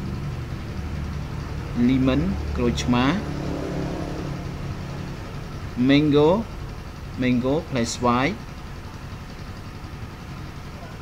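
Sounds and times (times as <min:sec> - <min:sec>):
steady low motor hum: 0:00.0 - 0:11.0.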